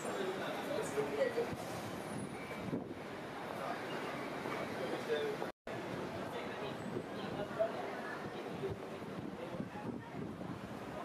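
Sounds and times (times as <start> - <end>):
distant streetcar moving: 0.0 - 11.0
street noise: 0.0 - 11.0.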